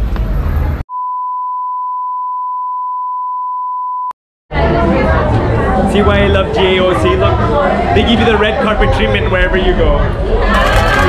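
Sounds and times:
background music: 0:04.5 - 0:11.0.

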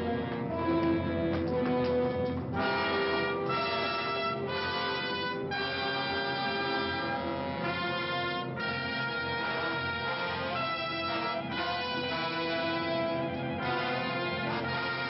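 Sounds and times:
orchestral brass chords: 0:00.0 - 0:15.0.

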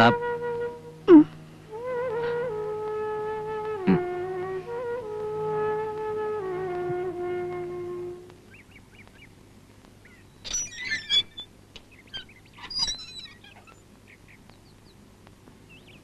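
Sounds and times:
small birds chirping: 0:08.3 - 0:16.0.

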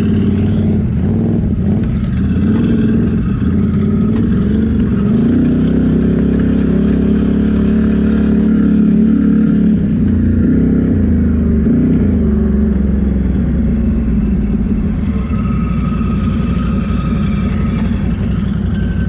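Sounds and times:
atv engine revving: 0:00.0 - 0:19.0.

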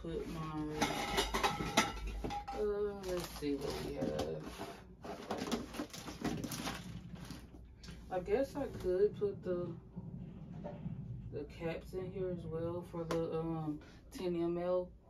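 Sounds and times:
plastic bags crinkling: 0:03.0 - 0:04.2, 0:05.2 - 0:07.7.

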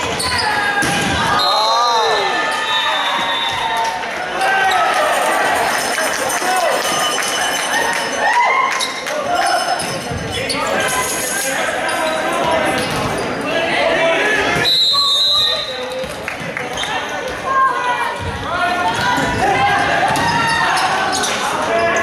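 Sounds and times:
people calling and talking: 0:00.0 - 0:22.0
referee's whistle: 0:01.3 - 0:01.8, 0:02.6 - 0:03.8, 0:14.6 - 0:15.9.

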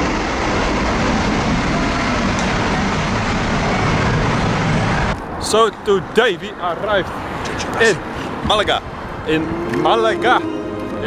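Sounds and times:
jet engines roaring: 0:00.0 - 0:11.0.

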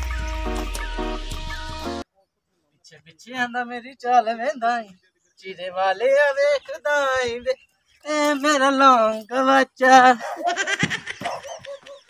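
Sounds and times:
man laughing: 0:10.2 - 0:12.0.

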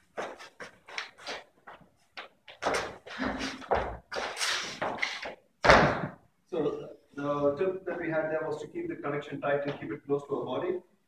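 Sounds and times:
dance shoes tapping on wooden floor: 0:00.1 - 0:06.2
heavy thump: 0:05.6 - 0:06.2.

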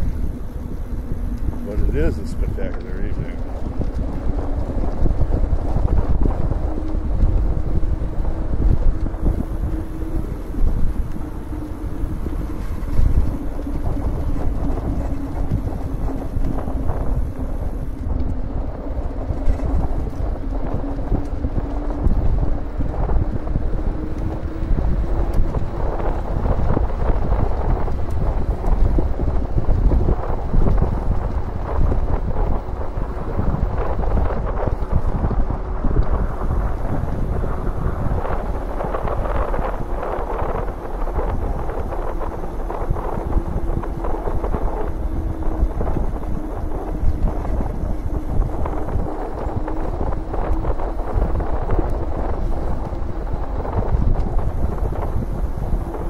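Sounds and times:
electric bike whine: 0:00.0 - 0:56.0
wind buffeting microphone: 0:00.0 - 0:56.0.

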